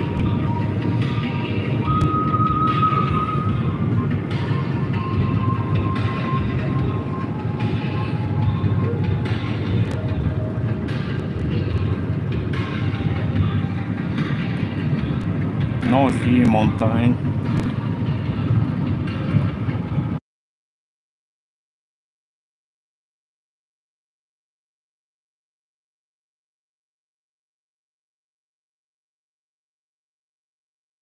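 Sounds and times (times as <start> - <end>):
road and tyre noise in car: 0.0 - 20.2
faint high tones: 1.8 - 4.0.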